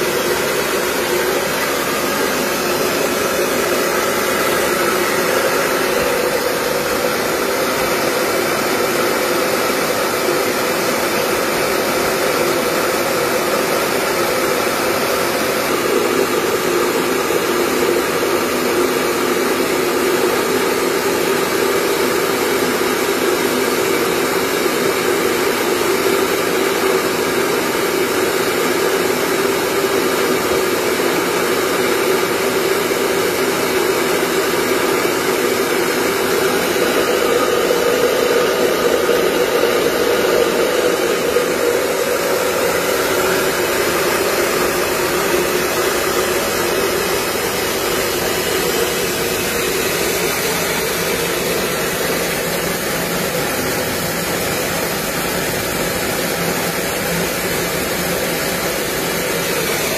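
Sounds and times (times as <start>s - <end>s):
rice mill whirring: 0.0s - 59.9s.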